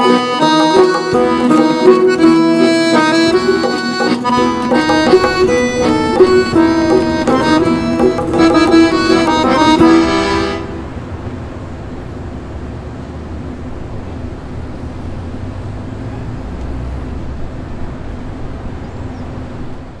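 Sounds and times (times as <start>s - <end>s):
accordion setar and zarb music: 0.0s - 11.1s
city street traffic rumble: 0.0s - 20.0s.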